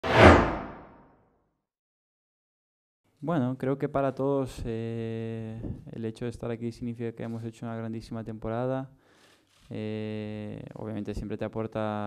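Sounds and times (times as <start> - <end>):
whoosh: 0.0 - 1.0.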